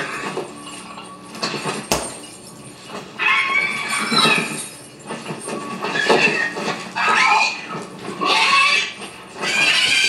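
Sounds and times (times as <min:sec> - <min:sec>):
shrill dragon screeches: 0:08.2 - 0:10.0.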